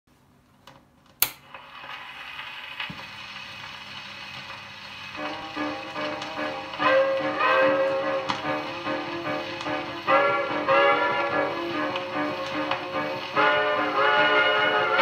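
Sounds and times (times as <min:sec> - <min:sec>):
record surface hiss: 0:00.1 - 0:15.0
dance orchestra recording: 0:05.2 - 0:15.0.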